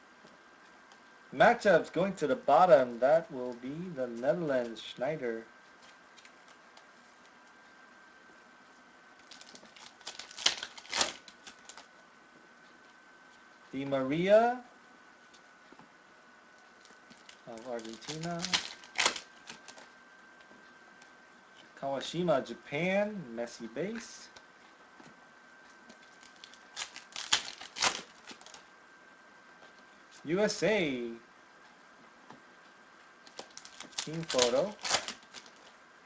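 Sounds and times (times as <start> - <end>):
cards snapping and rustling: 9.2 - 11.9, 16.8 - 19.9, 25.9 - 28.6, 33.3 - 35.7
foil wrapper crinkling and tearing: 9.2 - 11.9, 16.8 - 19.9, 26.0 - 28.6, 33.2 - 35.8.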